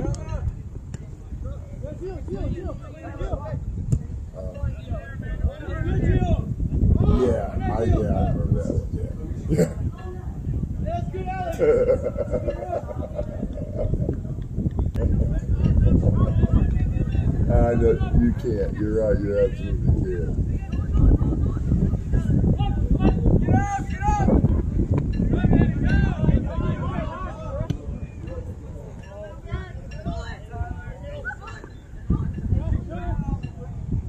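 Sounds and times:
wind rumble on microphone: 0.0 - 34.0.

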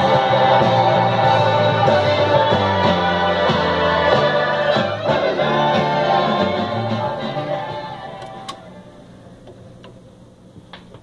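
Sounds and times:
record music: 0.0 - 11.0
turntable hum: 0.0 - 11.0.

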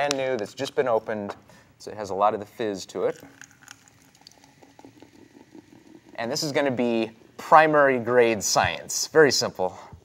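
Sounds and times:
soda fizzing and crackling: 2.9 - 7.8
soda pouring into glass: 2.9 - 8.2.

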